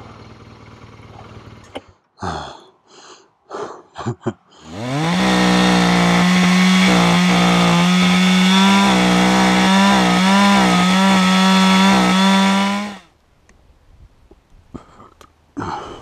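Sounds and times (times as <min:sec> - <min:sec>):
chainsaw cutting log: 0:04.6 - 0:13.1.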